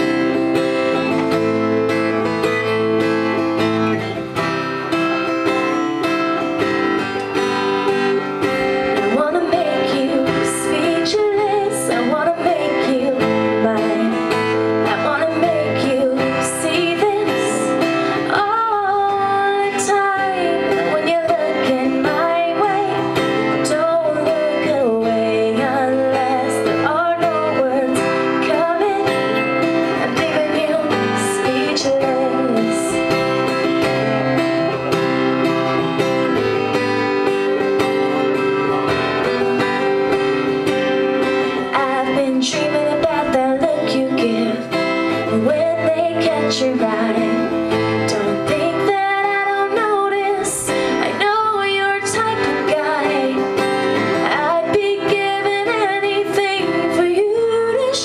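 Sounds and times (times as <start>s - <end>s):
acoustic guitar strumming: 0.0s - 58.0s
woman singing: 8.0s - 33.6s, 41.2s - 58.0s.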